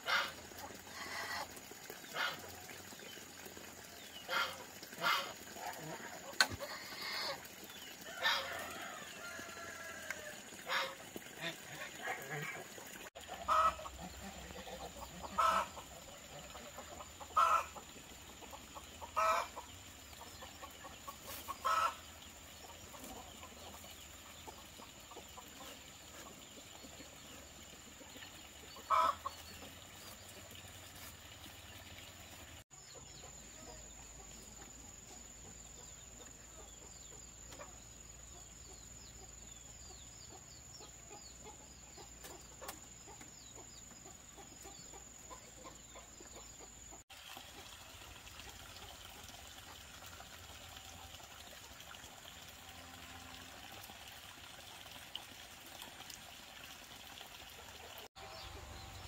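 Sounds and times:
chickens clucking: 4.2s - 30.2s, 32.7s - 37.8s, 39.9s - 47.0s.

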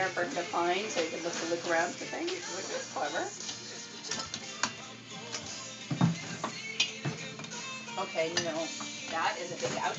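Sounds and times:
background music: 0.0s - 9.9s
items knocking on shelves: 5.9s - 7.3s.

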